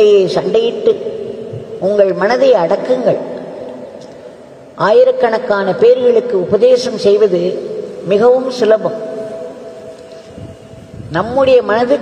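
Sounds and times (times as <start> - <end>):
background hiss: 0.0 - 12.0.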